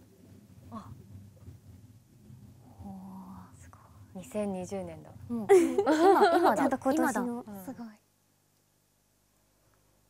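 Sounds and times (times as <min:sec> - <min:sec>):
woman humming: 0:00.7 - 0:01.0.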